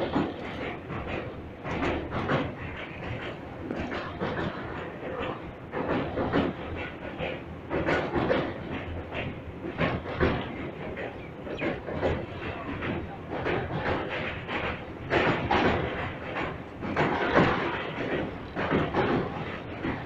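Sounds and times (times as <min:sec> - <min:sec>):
train rumble: 0:00.0 - 0:20.0
train wheels clattering over rail joints: 0:00.0 - 0:20.0.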